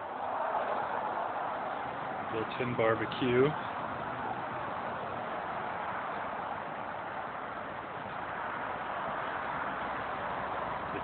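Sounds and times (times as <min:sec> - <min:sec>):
road traffic rush: 0:00.0 - 0:11.0.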